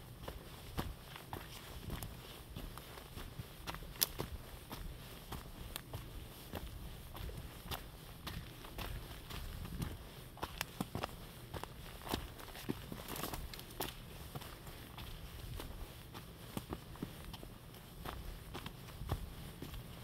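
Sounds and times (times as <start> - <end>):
footsteps crunching on trail: 0.0 - 20.0.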